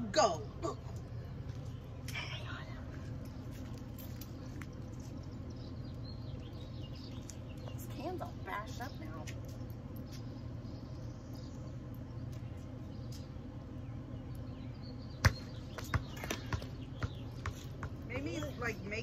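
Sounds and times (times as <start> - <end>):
low hum: 0.0 - 19.0.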